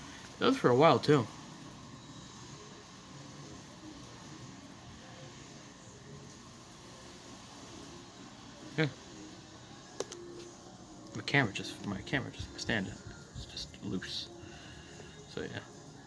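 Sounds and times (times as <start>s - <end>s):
room hum and hiss: 0.0s - 16.0s.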